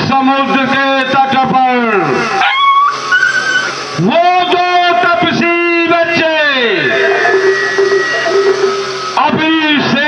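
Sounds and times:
long voiced call: 0:01.9 - 0:03.8, 0:06.6 - 0:09.2.

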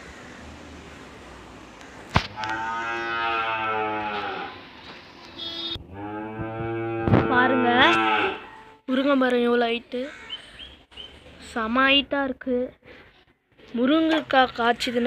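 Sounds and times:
cow mooing: 0:02.4 - 0:04.6, 0:05.8 - 0:08.8.

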